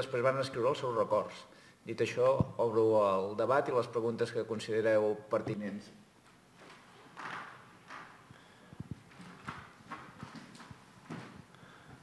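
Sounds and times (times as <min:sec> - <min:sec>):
footsteps on hard floor: 0:06.2 - 0:12.0.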